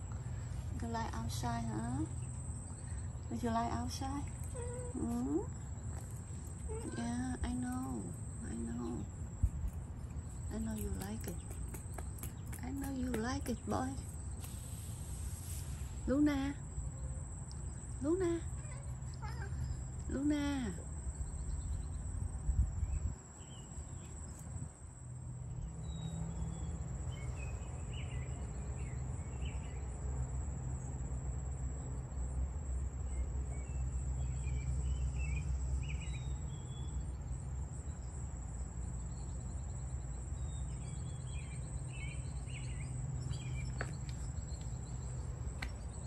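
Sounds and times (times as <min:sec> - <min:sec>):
high insect drone: 0:00.0 - 0:46.0.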